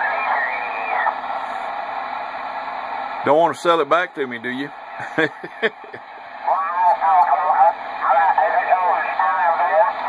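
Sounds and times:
radio static: 0.0s - 1.6s, 3.2s - 10.0s
faint garbled radio voice: 6.4s - 10.0s.

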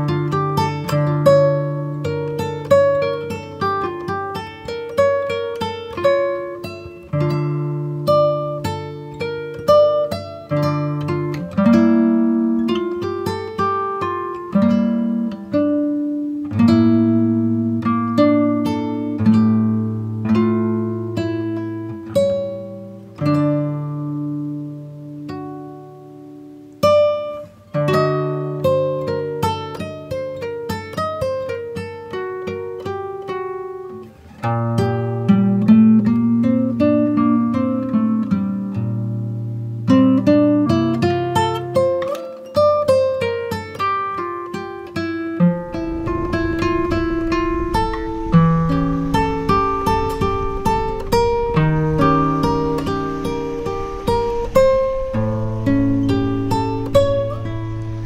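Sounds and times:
acoustic guitar melody: 0.0s - 58.0s.

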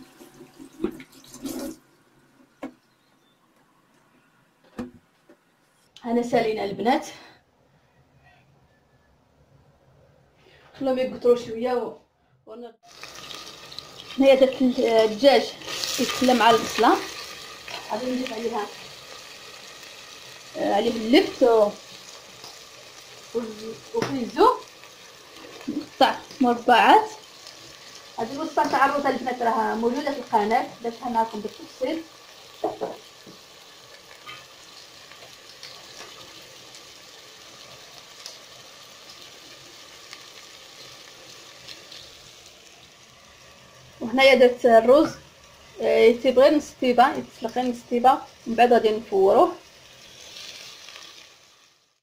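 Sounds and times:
food sizzling in a pot: 0.0s - 1.8s, 12.8s - 52.0s
tap water running into metal sink: 0.0s - 1.8s.

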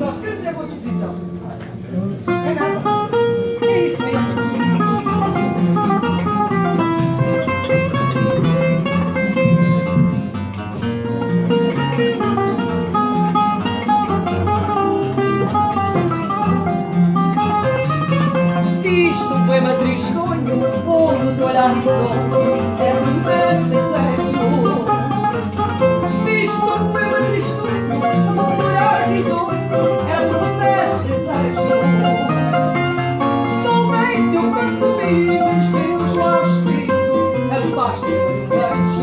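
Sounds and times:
acoustic guitars playing: 0.0s - 39.0s.

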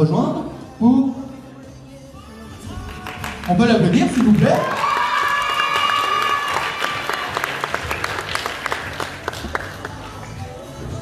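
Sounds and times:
audience applauding: 2.9s - 10.0s.

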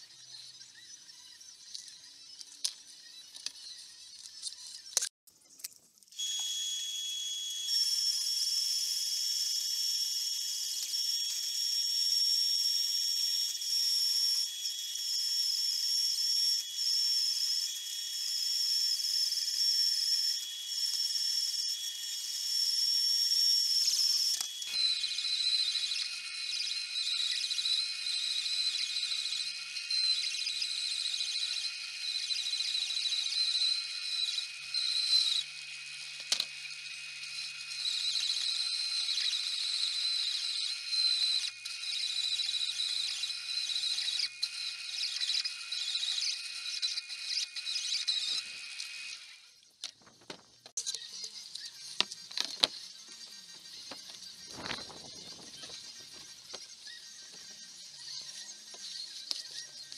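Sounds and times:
bandsaw cutting plastic: 6.0s - 59.9s.

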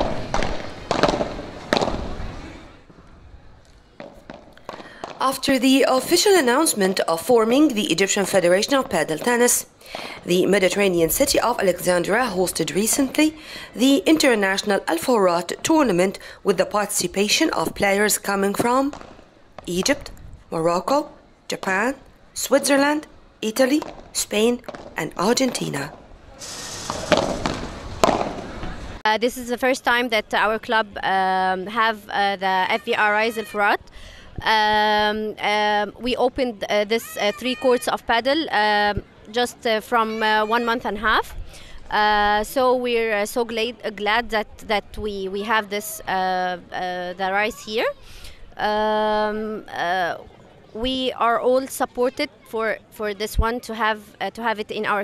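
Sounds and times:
padel ball hits: 0.0s - 2.2s, 26.9s - 28.8s
outdoor background noise: 0.0s - 55.0s.

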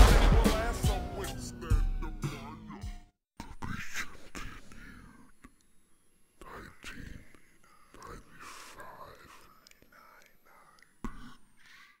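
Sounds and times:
person whispering: 3.4s - 5.6s, 6.4s - 12.0s.

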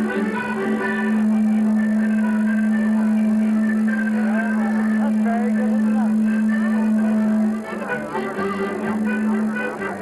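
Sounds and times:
held low note: 0.0s - 10.0s
live band playing: 0.0s - 10.0s.

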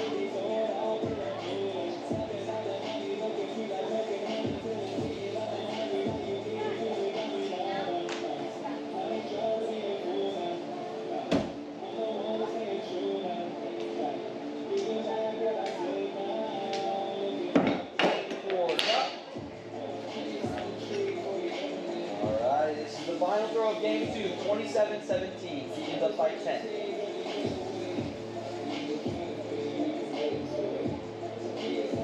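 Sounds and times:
radio music with steady beat: 0.0s - 32.0s.

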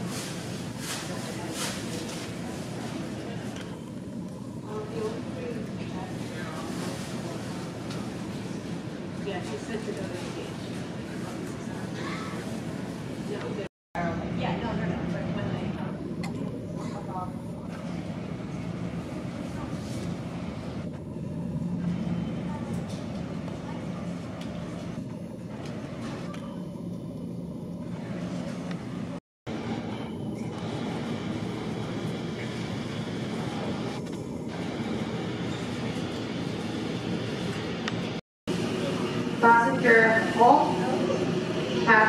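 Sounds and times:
murmur of people talking: 0.0s - 29.2s, 30.6s - 42.0s
steady hum: 0.0s - 42.0s.

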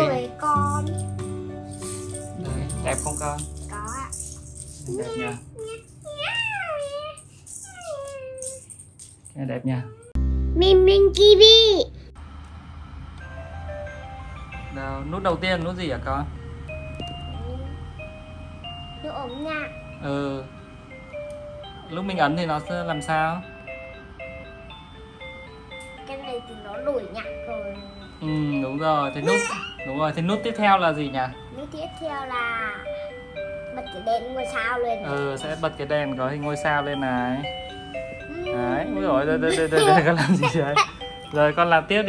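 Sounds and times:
plastic rattle toys rattling: 0.6s - 9.4s
music box lullaby: 16.7s - 42.0s
child vocalizing: 29.3s - 29.8s.

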